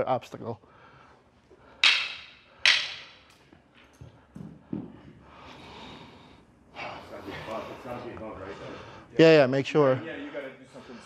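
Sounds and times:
sharp stick smacks: 0:01.8 - 0:03.2.

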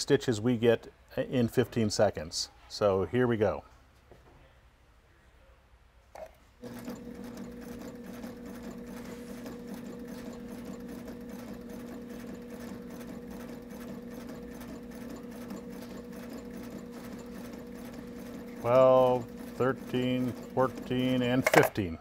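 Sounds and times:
sewing machine motor hum: 0:06.6 - 0:21.7
sewing machine stitching: 0:06.6 - 0:21.8.

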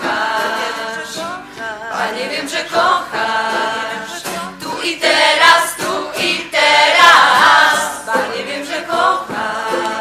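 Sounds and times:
choir singing: 0:00.0 - 0:01.3, 0:01.9 - 0:10.0.

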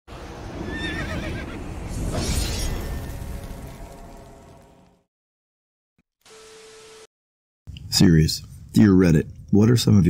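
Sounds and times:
horse whinnying: 0:00.6 - 0:01.6.

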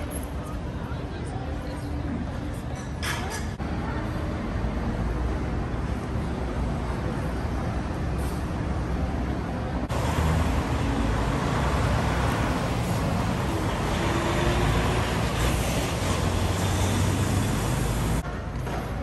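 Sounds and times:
street traffic: 0:00.0 - 0:19.0.

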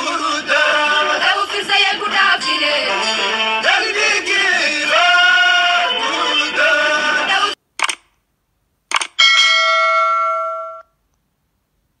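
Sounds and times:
mouse double click: 0:07.8 - 0:08.1, 0:08.9 - 0:09.2
notification bell ding: 0:09.2 - 0:10.9.

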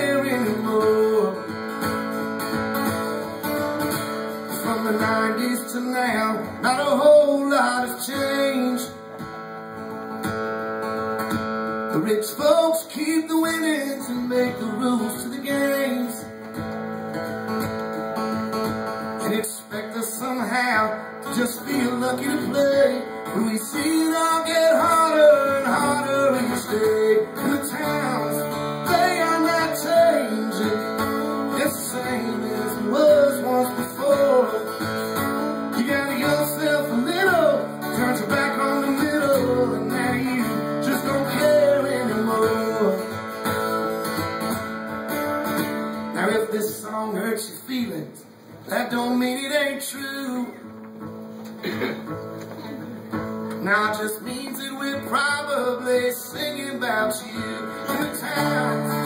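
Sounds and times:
bending lead guitar melody: 0:00.0 - 0:12.1, 0:13.9 - 0:19.4, 0:20.2 - 0:46.2, 0:54.4 - 0:59.0
acoustic guitar strumming: 0:00.0 - 0:59.0.

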